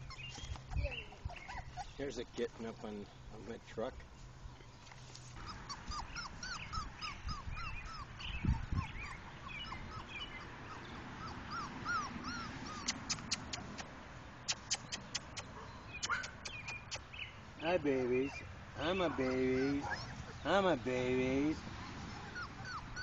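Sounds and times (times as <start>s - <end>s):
puppy whimpering: 0.0s - 2.0s, 5.4s - 13.6s, 18.0s - 20.5s, 21.4s - 23.0s.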